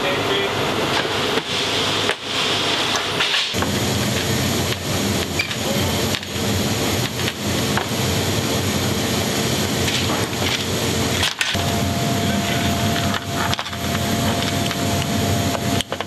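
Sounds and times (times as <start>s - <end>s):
loud aircraft cargo hold noise: 0.0s - 16.0s.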